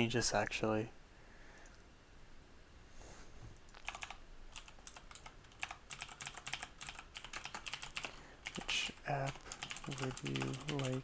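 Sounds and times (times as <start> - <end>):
keyboard typing clicks: 3.6 - 11.0.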